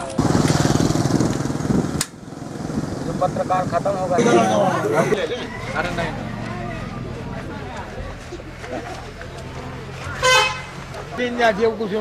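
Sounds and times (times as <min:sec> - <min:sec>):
vehicle horn honk: 0:10.2 - 0:10.8.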